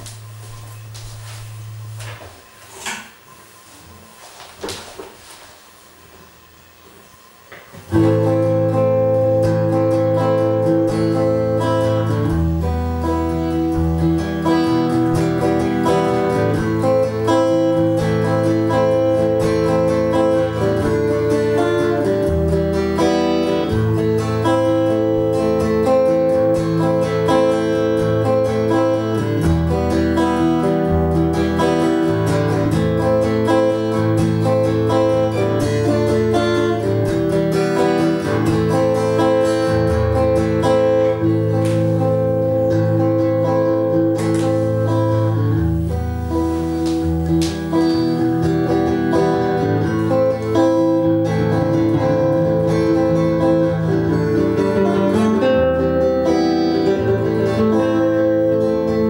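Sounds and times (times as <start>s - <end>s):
acoustic guitar playing rhythm figure: 0.0s - 6.4s, 7.1s - 59.0s.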